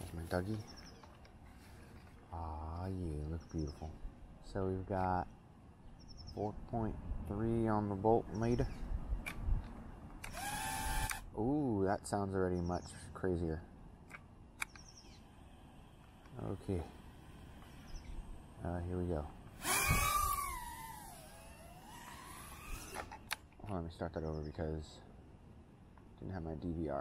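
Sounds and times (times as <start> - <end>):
small drone motors whining: 10.2 - 11.3, 14.6 - 23.4.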